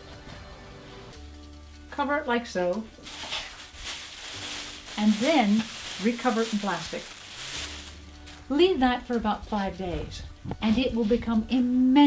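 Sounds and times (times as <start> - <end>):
plastic bag crinkling: 3.0 - 8.6.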